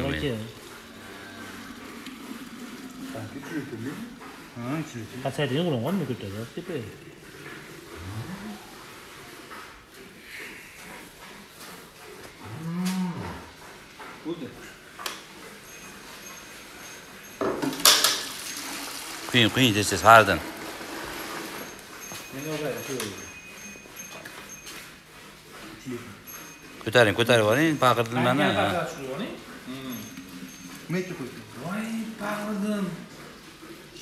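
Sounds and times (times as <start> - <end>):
cows mooing: 0.0 - 4.8, 6.9 - 9.1, 12.4 - 13.6.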